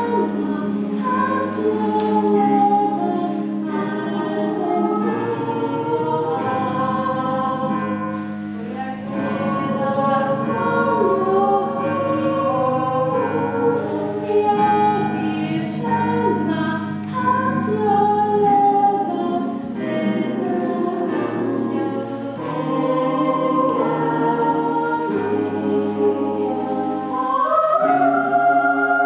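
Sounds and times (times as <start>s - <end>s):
mixed choir singing: 0.0s - 29.0s.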